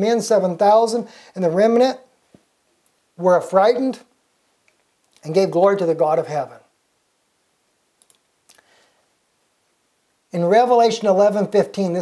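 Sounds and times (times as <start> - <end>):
faint short clicks: 8.0 - 8.6.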